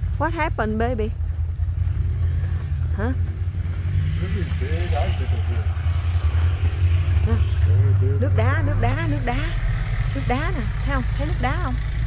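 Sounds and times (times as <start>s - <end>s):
motorbike engine running: 0.0s - 12.0s.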